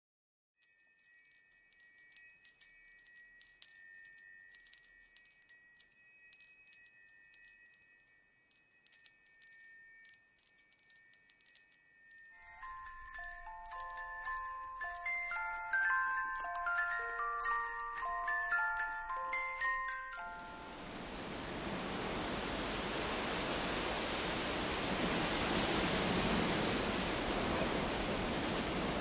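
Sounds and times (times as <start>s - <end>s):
bell-like melody: 0.6s - 29.0s
high tinkling chimes: 0.6s - 29.0s.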